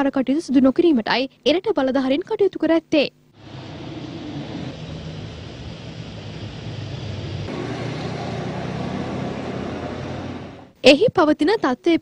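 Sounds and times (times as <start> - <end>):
street traffic noise: 3.4 - 10.8.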